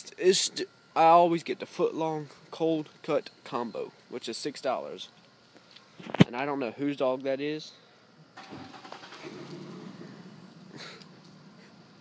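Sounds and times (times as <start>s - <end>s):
vehicle running with faint hum: 8.3s - 12.0s.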